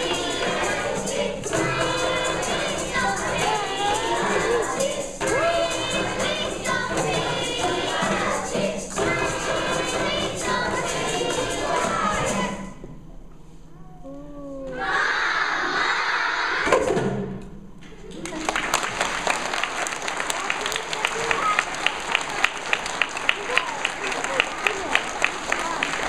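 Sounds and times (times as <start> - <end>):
children's choir singing: 0.0 - 13.0, 14.7 - 17.1
audience cheering and applauding: 18.1 - 26.0.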